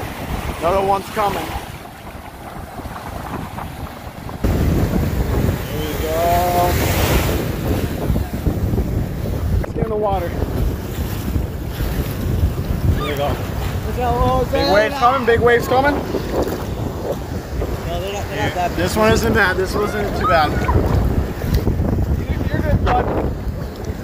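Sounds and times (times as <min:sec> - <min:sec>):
ocean surf washing in: 0:00.0 - 0:24.0
wind buffeting microphone: 0:00.0 - 0:24.0.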